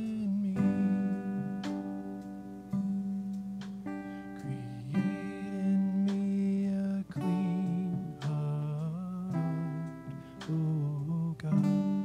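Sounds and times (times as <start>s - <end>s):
long held melody notes: 0.0s - 12.0s
strummed guitar chords: 0.0s - 12.0s.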